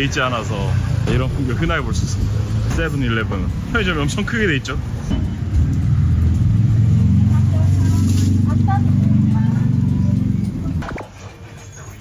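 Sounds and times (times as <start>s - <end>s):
vehicle engine running: 5.2s - 12.0s.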